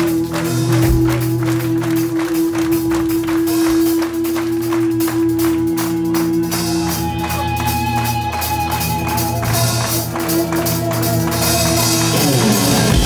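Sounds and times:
rock band playing live: 0:00.0 - 0:13.0.

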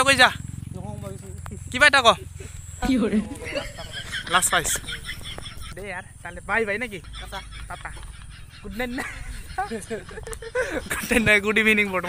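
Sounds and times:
short calls: 0:00.0 - 0:11.1
motorcycle engine idling: 0:00.0 - 0:12.0.

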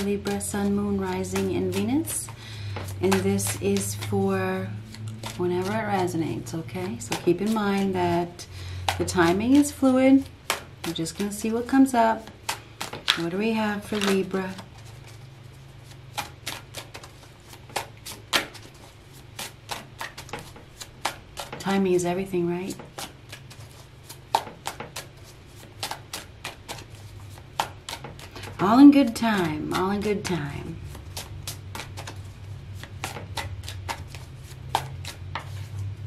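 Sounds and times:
cards being shuffled: 0:00.0 - 0:36.0.

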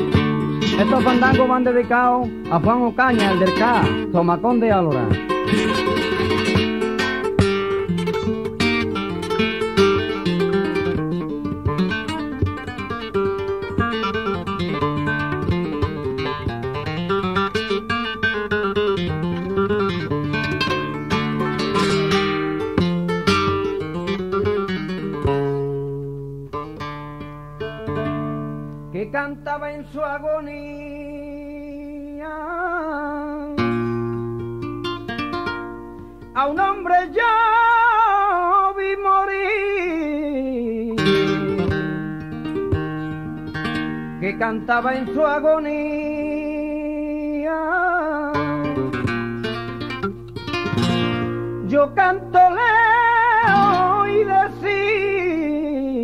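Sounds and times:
flamenco acoustic guitar: 0:00.0 - 0:56.0.

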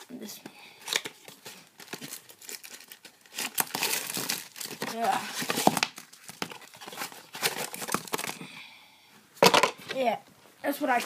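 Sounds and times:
paper packaging crinkling: 0:00.8 - 0:08.4.

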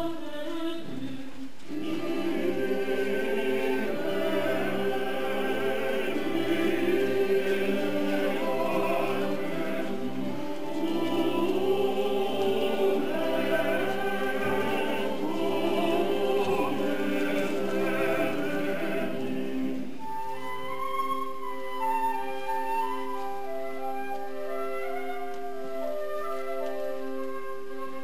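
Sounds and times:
choir singing: 0:00.0 - 0:20.9.

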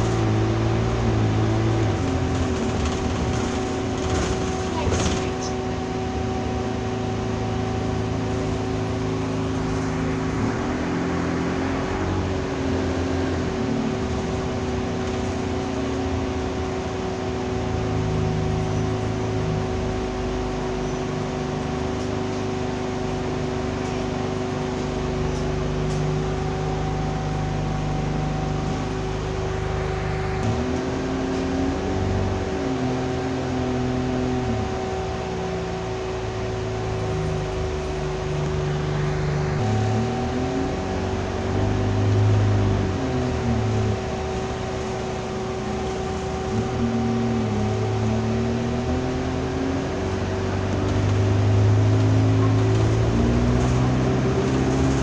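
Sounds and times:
diesel bus engine running: 0:00.0 - 0:55.0
road noise: 0:00.0 - 0:55.0
steady whine: 0:00.0 - 0:55.0.

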